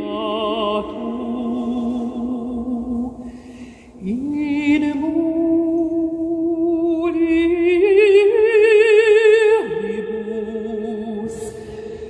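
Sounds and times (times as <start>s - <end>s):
woman singing a cappella: 0.0s - 12.0s.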